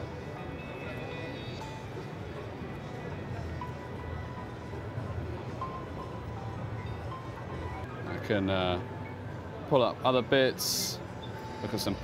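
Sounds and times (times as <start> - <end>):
crowd hubbub: 0.0 - 8.0
faint music: 0.0 - 12.0.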